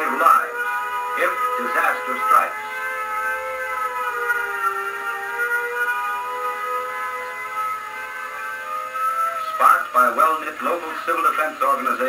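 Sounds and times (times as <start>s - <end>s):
air-raid siren wailing: 0.0s - 12.0s.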